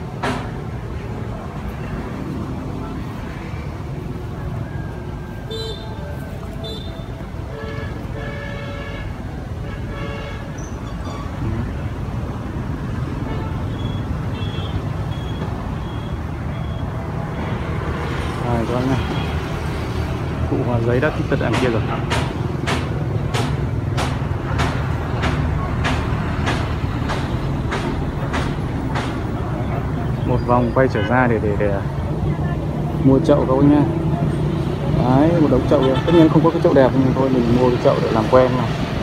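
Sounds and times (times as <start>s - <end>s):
faint distant voices: 0.0s - 8.6s
road traffic rumble: 0.0s - 39.0s.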